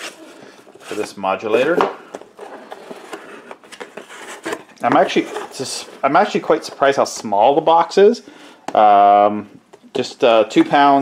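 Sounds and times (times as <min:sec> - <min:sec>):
cardboard scraping: 0:00.0 - 0:06.5.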